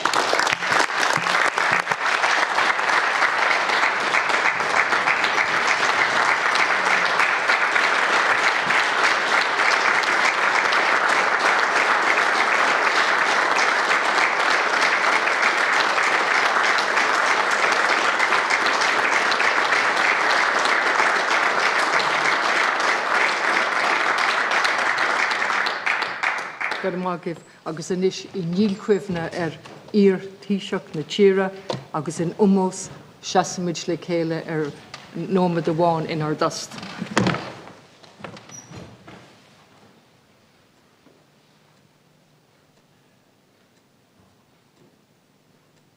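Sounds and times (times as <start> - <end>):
crowd applauding: 0.0 - 27.2.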